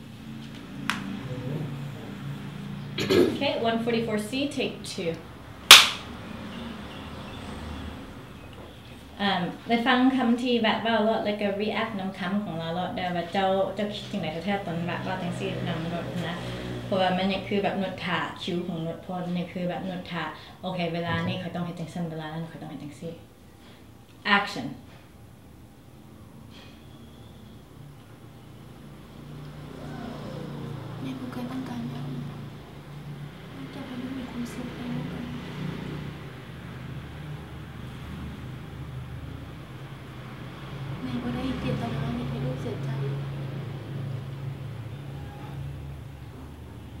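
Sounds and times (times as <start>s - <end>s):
steady low hum: 0.0s - 6.2s
clapperboard snapping shut: 5.7s - 6.1s.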